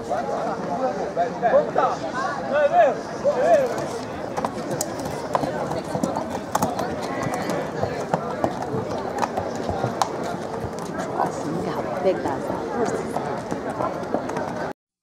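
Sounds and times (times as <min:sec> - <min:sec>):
hooves clopping on pavement: 0:03.4 - 0:14.7.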